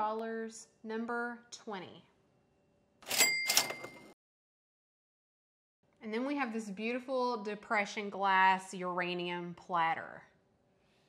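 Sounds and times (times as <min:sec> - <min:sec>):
cash register rattling strokes: 0:03.0 - 0:04.2
ringing bell tone: 0:03.1 - 0:04.1.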